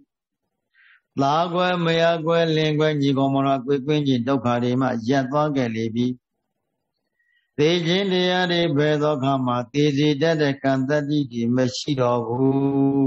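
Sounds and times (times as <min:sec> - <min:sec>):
person chanting into a microphone: 0:07.6 - 0:13.0.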